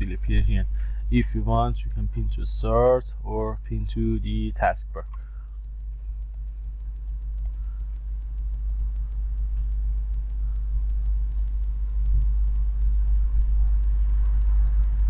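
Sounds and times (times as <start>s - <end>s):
faint quick ticking: 0.0s - 15.0s
steady low hum: 0.0s - 15.0s.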